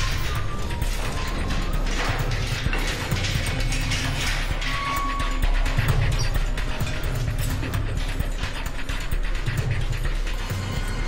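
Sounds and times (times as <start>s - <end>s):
background music: 0.0s - 11.0s
rapid clicking and clattering: 0.0s - 11.0s.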